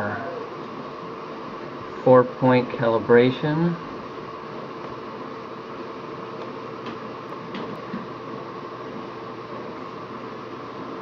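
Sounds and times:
fan hum and hiss: 0.0 - 11.0.

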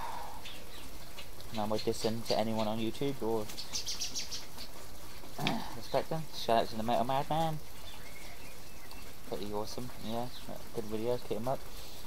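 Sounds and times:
small birds chirping: 0.0 - 12.0
steady outdoor background: 0.0 - 12.0.

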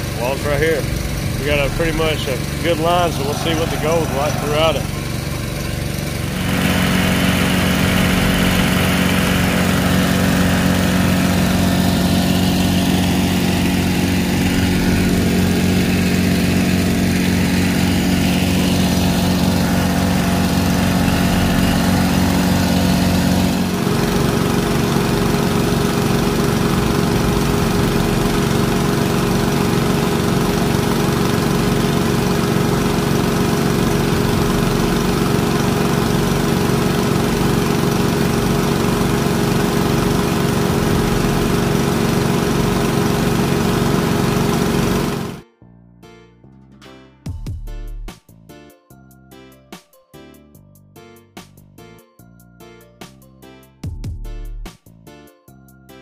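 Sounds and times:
small gasoline engine running: 0.0 - 45.4.

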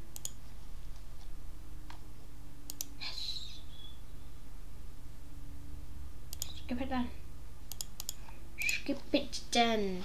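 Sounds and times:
computer mouse clicks: 0.1 - 0.4, 2.7 - 3.0, 6.3 - 6.7, 7.7 - 8.8.

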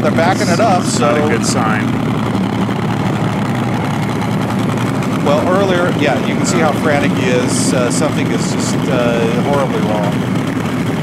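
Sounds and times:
dragster engine idling: 0.0 - 11.0.

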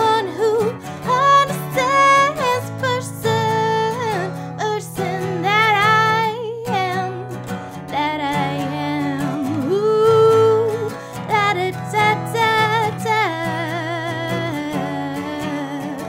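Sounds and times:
strummed acoustic guitar: 0.0 - 16.0
woman singing: 0.0 - 16.0.

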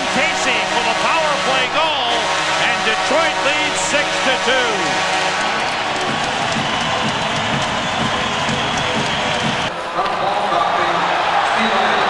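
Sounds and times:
crowd cheering and clapping: 0.0 - 12.0.

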